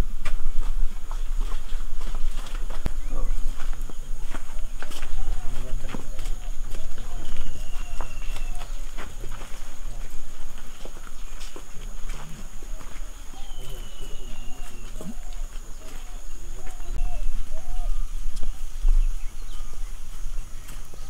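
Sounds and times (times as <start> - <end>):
footsteps on dirt: 0.0 - 21.0.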